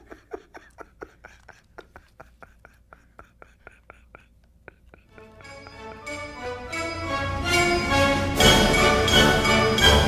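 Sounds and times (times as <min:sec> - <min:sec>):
breathy stifled laughter: 0:00.0 - 0:06.0.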